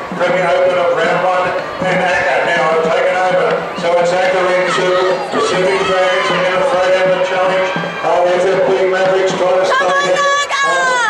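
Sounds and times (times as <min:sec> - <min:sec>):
spectators shouting and cheering: 0:00.0 - 0:11.0.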